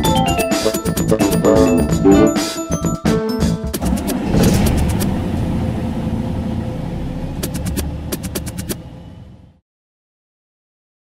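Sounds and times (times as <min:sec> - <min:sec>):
electronic music rumbling noise: 0:00.0 - 0:06.2
stuttering clicks: 0:03.7 - 0:05.2, 0:07.4 - 0:08.8.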